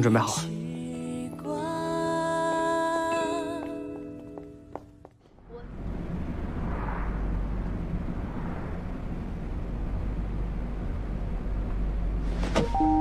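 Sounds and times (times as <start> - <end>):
car engine and road noise: 4.7 - 13.0.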